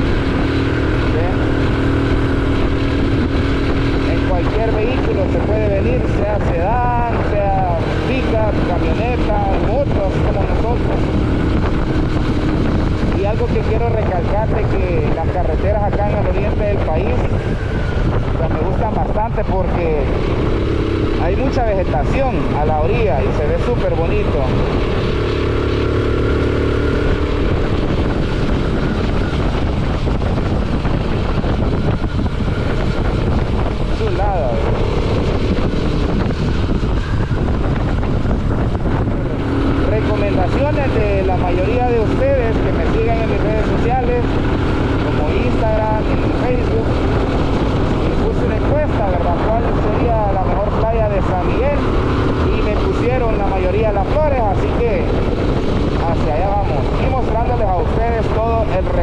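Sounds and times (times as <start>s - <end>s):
motorcycle engine running: 0.0s - 59.0s
wind noise on microphone: 0.0s - 59.0s.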